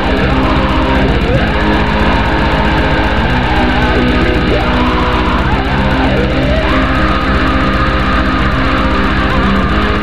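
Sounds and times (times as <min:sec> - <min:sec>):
black metal music: 0:00.0 - 0:10.0.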